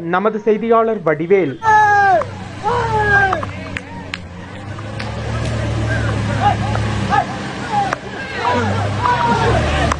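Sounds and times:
people talking: 0.0 - 9.9
vehicle engine idling: 0.4 - 9.9.

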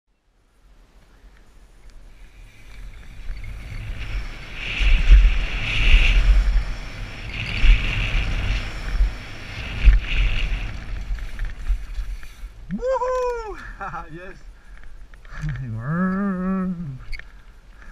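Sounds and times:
tyre and trail rumble: 1.2 - 17.9
wind buffeting microphone: 2.1 - 17.2.

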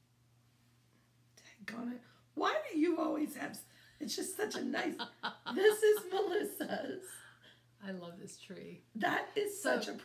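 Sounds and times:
woman speaking: 1.5 - 10.0.

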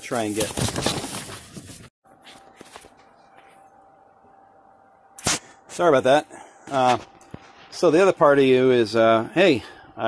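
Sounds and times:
phone and paper rustling: 0.0 - 3.8
faint steady hum: 2.1 - 10.0.

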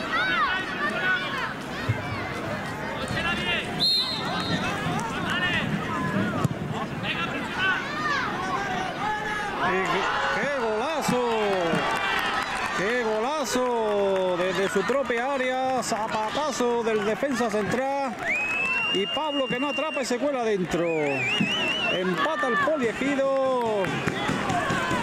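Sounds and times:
children and adults shouting: 0.0 - 6.4, 7.3 - 13.4, 22.0 - 25.0.

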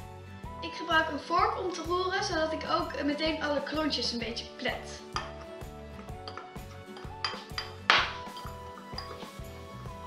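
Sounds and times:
background music with beat: 0.0 - 0.6, 4.9 - 10.0
fork scraping glass bowl: 6.2 - 9.5.

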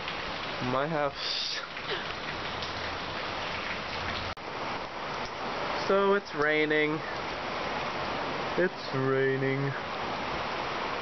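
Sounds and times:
rain falling: 0.0 - 11.0.

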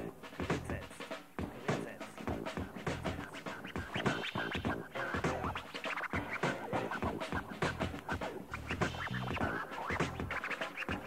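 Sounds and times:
bass line: 0.0 - 0.9, 1.6 - 10.4
hip-hop beat: 0.0 - 11.0
turntable scratching: 0.0 - 11.0.

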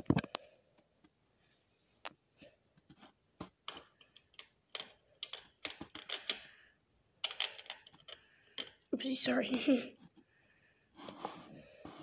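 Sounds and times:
plastic bricks clicking and tapping: 3.4 - 6.6, 7.2 - 8.9.

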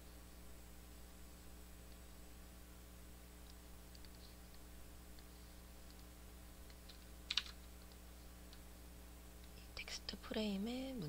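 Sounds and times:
steady low hum: 0.0 - 11.0
computer keyboard clicks: 3.4 - 4.2, 6.6 - 8.6.

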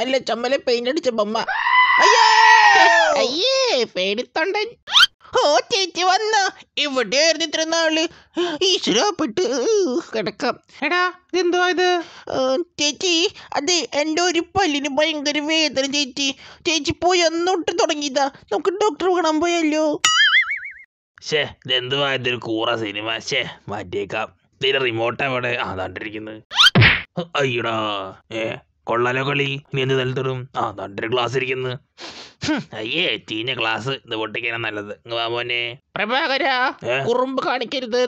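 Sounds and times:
high-pitched voice wailing: 1.5 - 3.3
cartoon boing: 20.1 - 20.8
dubbed voice speaking: 21.2 - 26.4, 27.2 - 31.8, 32.4 - 37.7.

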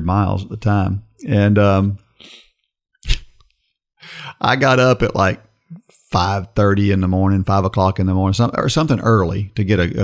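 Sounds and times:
soft breath: 4.0 - 4.4.

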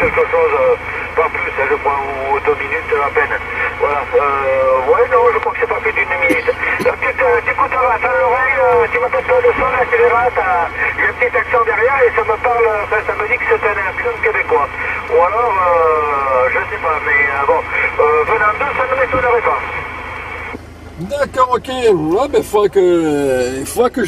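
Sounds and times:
man's voice over radio speaker: 0.0 - 24.0
steady low hum: 0.0 - 24.0.

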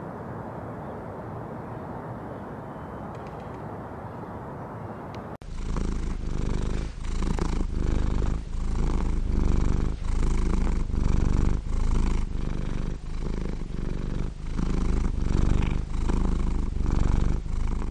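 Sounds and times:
cat purring: 5.4 - 17.9.

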